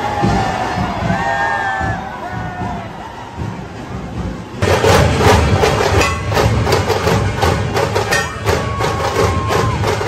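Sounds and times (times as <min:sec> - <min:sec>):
percussion band drumming fast: 0:00.0 - 0:10.0.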